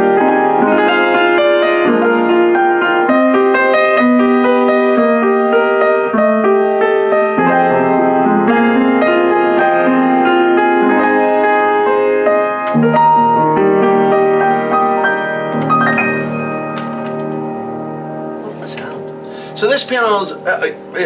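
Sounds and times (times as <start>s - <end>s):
upright piano playing chords: 0.0s - 21.0s.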